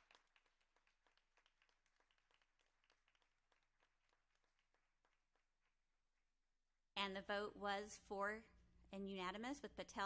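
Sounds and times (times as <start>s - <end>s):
faint clapping of small group: 0.0s - 6.3s.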